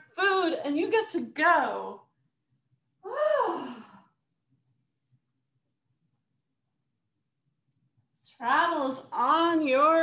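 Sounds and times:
woman sighing: 3.0 - 4.2.

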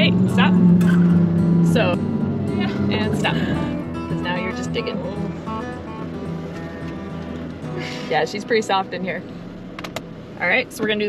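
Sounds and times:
background music: 0.0 - 10.9
truck engine under throttle: 0.0 - 11.0.

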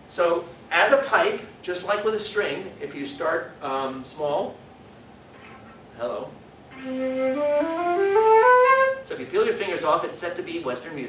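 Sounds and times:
flute playing ascending scale: 6.7 - 9.1.

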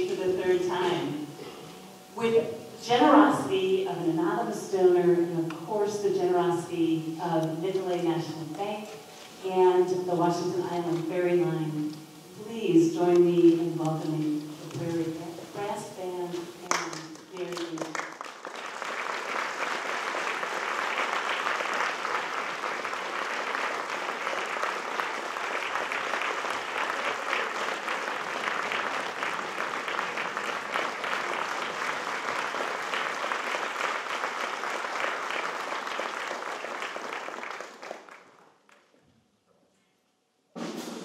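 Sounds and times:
woman speaking: 0.0 - 1.3, 2.2 - 18.0
audience applauding: 16.6 - 38.9.

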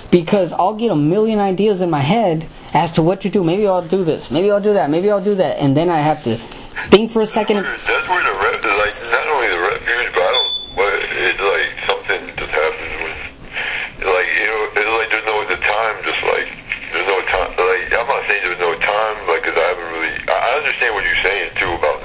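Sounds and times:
person talking: 0.1 - 22.0.

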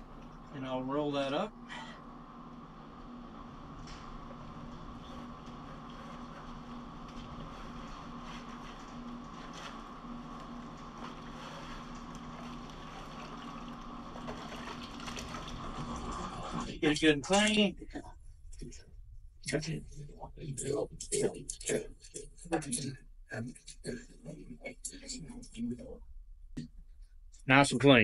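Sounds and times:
faint steady hum: 0.0 - 28.0
water sloshing in plastic bucket: 10.9 - 16.8.

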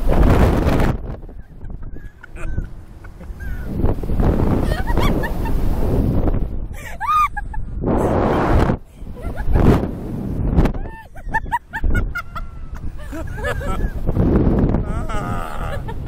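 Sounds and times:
wind noise on microphone: 0.0 - 16.0
people laughing and shrieking: 6.8 - 7.6, 10.8 - 14.1, 14.8 - 16.0.

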